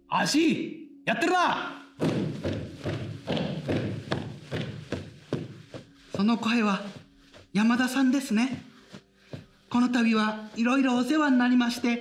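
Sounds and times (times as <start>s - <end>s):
hand thumping on floor: 2.0s - 5.5s.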